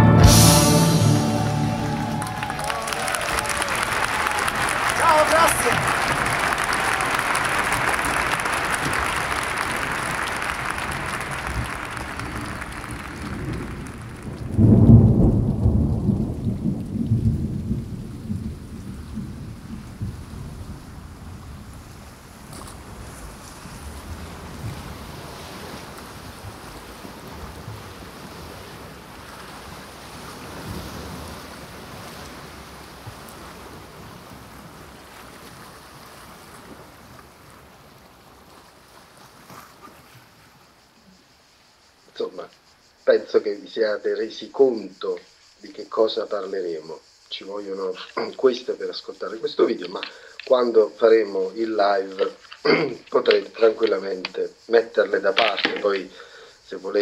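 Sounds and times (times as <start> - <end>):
thunder clap rumbling: 0.0 - 22.3
rain hissing: 0.0 - 38.5, 40.8 - 57.0.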